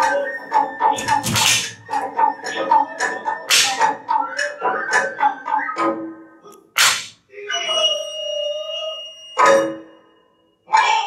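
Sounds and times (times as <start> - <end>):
sharp wooden cracks: 1.0 - 1.8, 3.5 - 3.8, 6.8 - 7.2.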